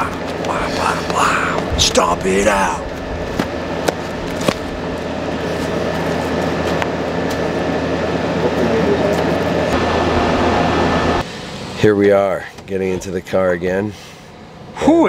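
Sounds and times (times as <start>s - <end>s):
air conditioner unit humming: 0.0s - 15.0s.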